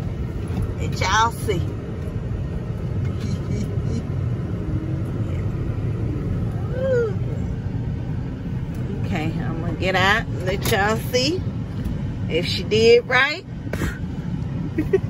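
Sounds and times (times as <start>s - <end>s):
truck engine rumble: 0.0s - 15.0s.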